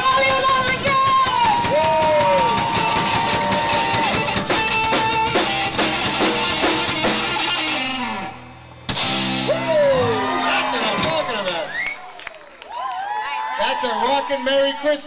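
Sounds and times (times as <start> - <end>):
drum kit: 0.0 - 8.0, 8.8 - 11.3
full-band hit: 1.6 - 11.1
electric guitars with held notes: 1.9 - 10.0.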